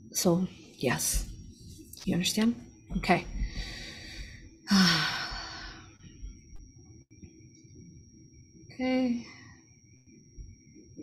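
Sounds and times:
woman sighing: 4.7 - 5.8.

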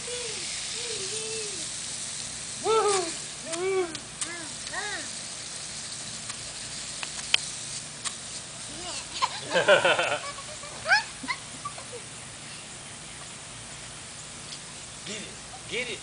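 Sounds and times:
lawn sprinkler hissing: 0.0 - 16.0.

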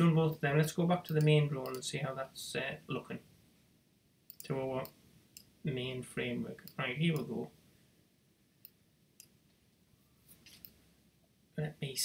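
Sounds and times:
computer mouse clicks: 4.3 - 5.5.

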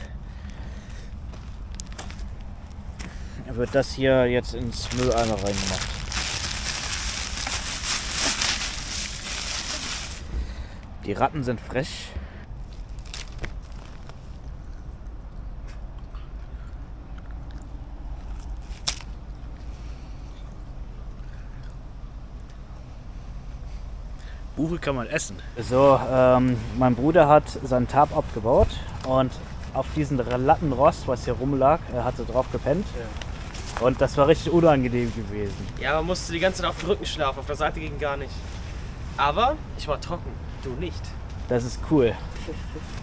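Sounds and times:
low outdoor rumble: 0.0 - 43.0
plastic bag crinkling: 4.5 - 10.3, 12.6 - 14.4.

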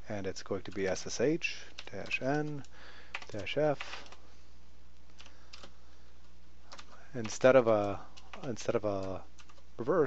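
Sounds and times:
steady low hum: 0.0 - 10.0
computer keyboard keystrokes: 1.7 - 4.2, 5.1 - 5.8, 6.7 - 9.7.

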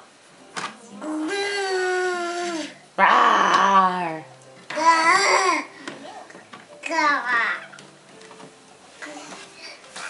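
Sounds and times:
infant growly cry: 1.1 - 4.2, 4.9 - 5.7.

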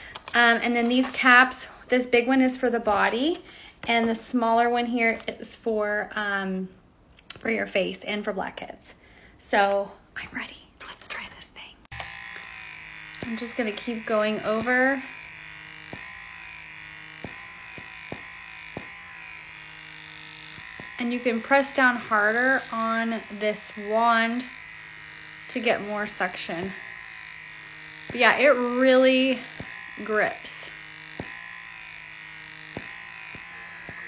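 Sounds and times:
vacuum suction motor humming: 0.0 - 6.4, 11.8 - 34.0.

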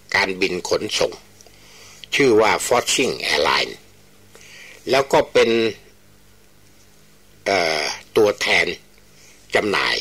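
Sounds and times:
faint low hum: 0.0 - 10.0
man speaking: 0.1 - 1.3, 2.1 - 3.9, 4.8 - 5.9, 7.4 - 8.9, 9.5 - 10.0.

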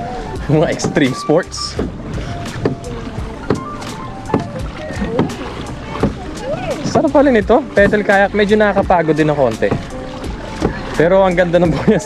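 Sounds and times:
water slapping a kayak hull: 0.0 - 12.0
wind rumble on microphone: 1.7 - 8.1.

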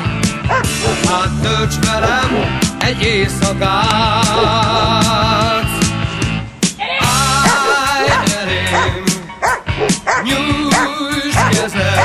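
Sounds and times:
rock song with singing: 0.0 - 12.0
dog barking: 0.5 - 1.2, 4.4 - 5.0, 7.4 - 12.0.

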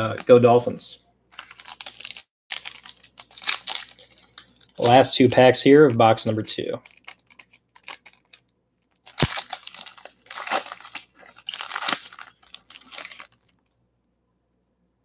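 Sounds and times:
foil wrapper tearing and crinkling: 1.4 - 5.3, 6.8 - 13.6.

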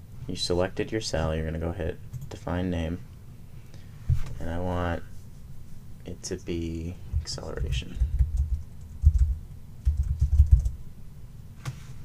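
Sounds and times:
keyboard typing thumps: 7.1 - 10.8.

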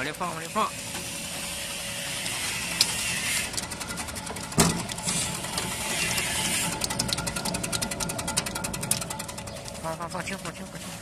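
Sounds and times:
slicing machine motor humming: 0.0 - 11.0.

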